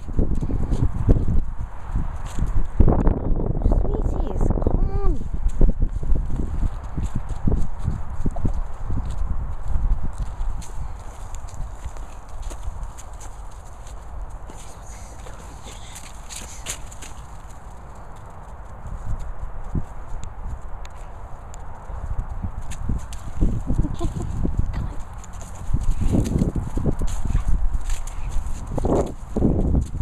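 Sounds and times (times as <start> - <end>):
footsteps on grass: 5.1 - 30.0.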